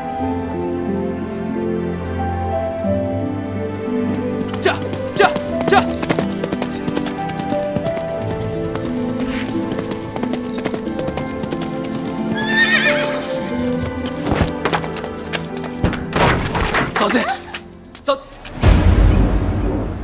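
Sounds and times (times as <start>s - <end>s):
background music: 0.0s - 20.0s
horse hooves on dirt: 4.0s - 18.5s
horse whinnying: 12.3s - 13.7s.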